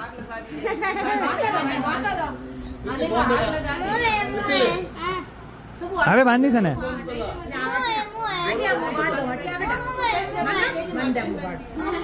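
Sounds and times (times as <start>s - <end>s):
children talking and calling out: 0.5s - 5.9s, 6.9s - 12.0s.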